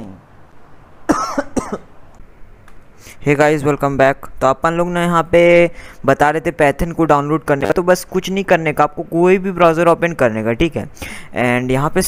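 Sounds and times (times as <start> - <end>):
man coughing: 1.1 - 1.9.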